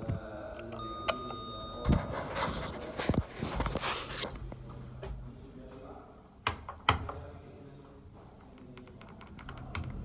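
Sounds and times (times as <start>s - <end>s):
elevator electronic beep: 0.8s - 2.3s.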